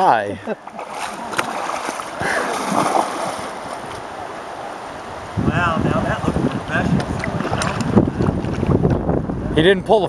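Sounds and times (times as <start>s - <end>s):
river water splashing: 0.0s - 9.4s
wind rumbling on microphone: 1.6s - 10.0s.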